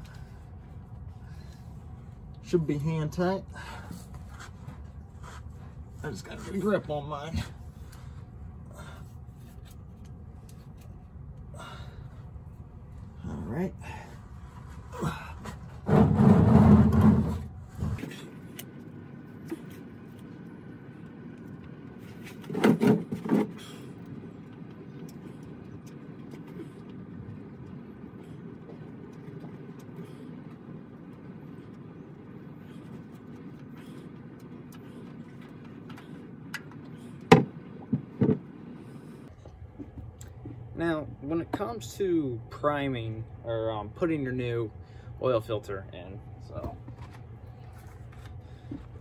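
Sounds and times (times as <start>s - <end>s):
rustling and scraping: 14.4s - 18.3s.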